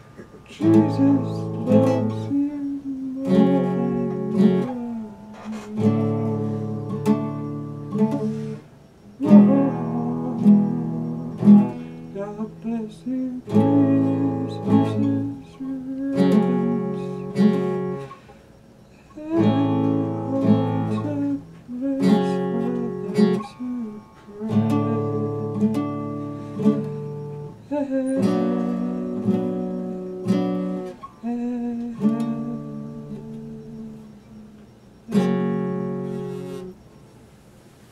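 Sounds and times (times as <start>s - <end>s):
classical guitar chords: 0.0s - 36.9s.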